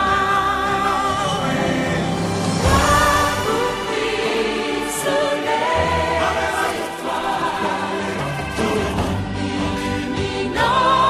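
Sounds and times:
choir singing held notes: 0:00.0 - 0:11.0
musical accompaniment: 0:00.0 - 0:11.0.

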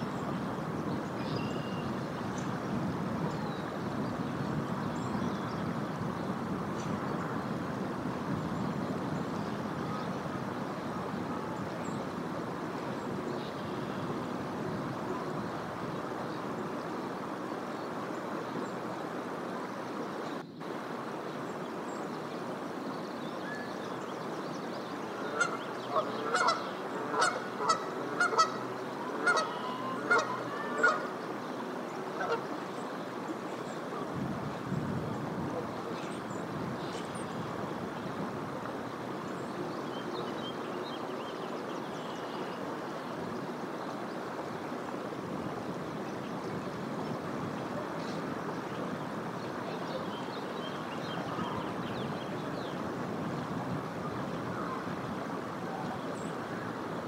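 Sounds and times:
flowing creek rushing: 0:00.0 - 0:57.0
goose honking: 0:25.2 - 0:31.1.

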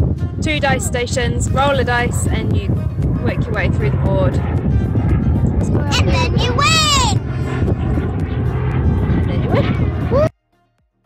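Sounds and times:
wind buffeting microphone: 0:00.0 - 0:10.3
voices: 0:00.4 - 0:04.4.

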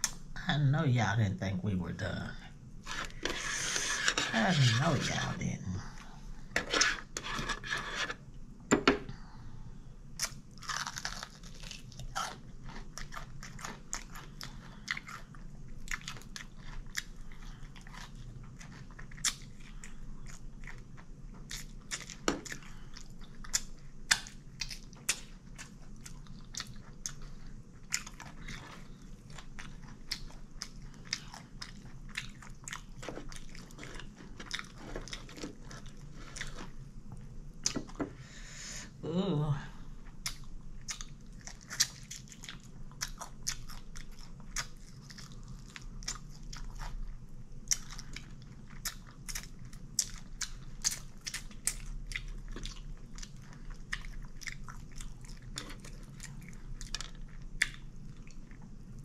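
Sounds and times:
steady low hum: 0:00.0 - 0:59.0
chewing crunchy food: 0:10.2 - 0:38.1, 0:39.9 - 0:59.0.

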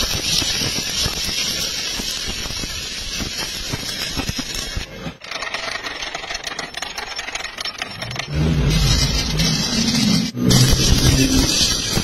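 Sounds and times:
welding arc crackling: 0:00.0 - 0:04.9, 0:09.0 - 0:12.0.

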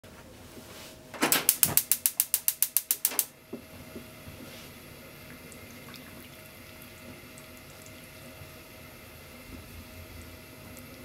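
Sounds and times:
gas stove igniter clicking: 0:01.2 - 0:03.3.

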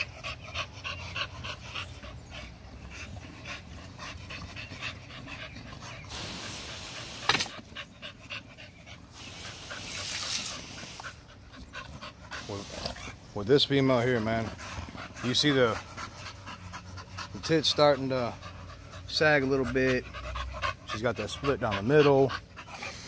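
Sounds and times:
dog panting: 0:00.0 - 0:23.0.

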